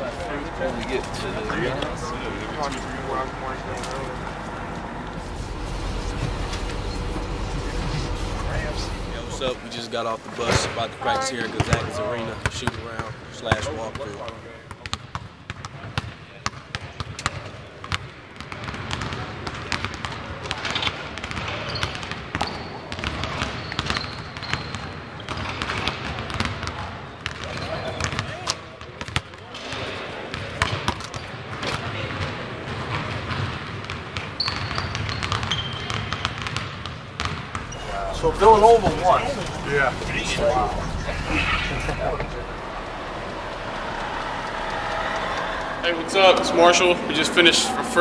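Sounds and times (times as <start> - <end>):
indistinct voices: 0.0 - 14.2, 37.6 - 48.0.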